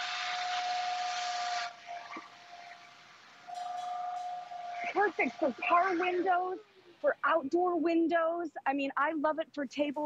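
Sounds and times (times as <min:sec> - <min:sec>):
cordless blower whine: 0:00.0 - 0:02.7.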